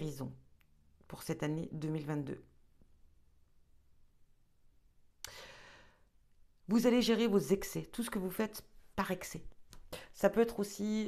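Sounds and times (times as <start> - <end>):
woman breathing: 5.2 - 6.2, 9.9 - 10.2.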